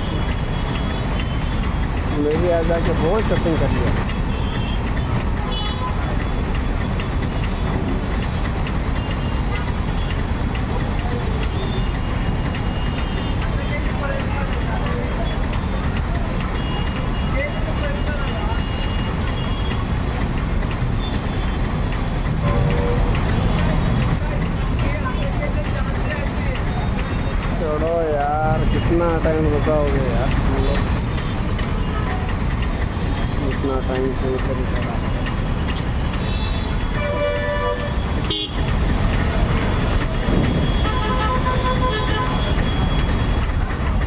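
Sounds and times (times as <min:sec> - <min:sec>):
indistinct voices: 0:00.0 - 0:37.0
traffic engines rumbling: 0:00.0 - 0:44.0.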